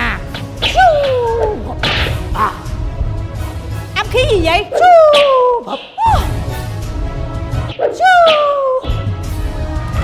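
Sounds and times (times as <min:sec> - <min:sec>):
background music with steady bass: 0:00.0 - 0:07.8, 0:08.7 - 0:10.0.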